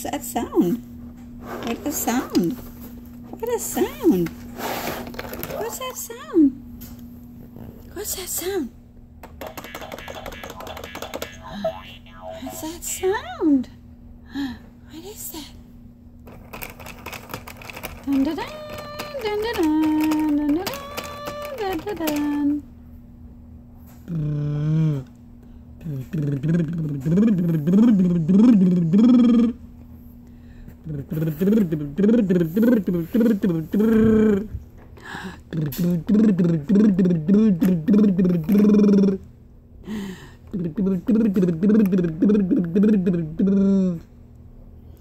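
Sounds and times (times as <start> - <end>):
plastic baby toys clicking: 16.3 - 22.5.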